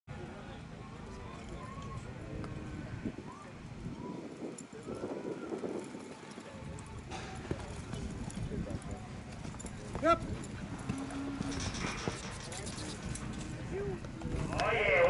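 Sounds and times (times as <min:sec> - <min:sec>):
horse hooves in sand: 0:04.3 - 0:15.0
people talking: 0:11.4 - 0:15.0.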